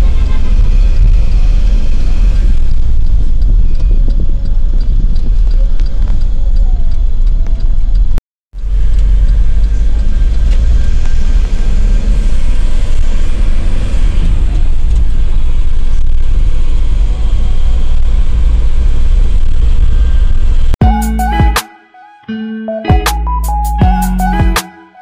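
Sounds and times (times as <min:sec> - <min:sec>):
bus engine and road noise: 0:00.0 - 0:20.8.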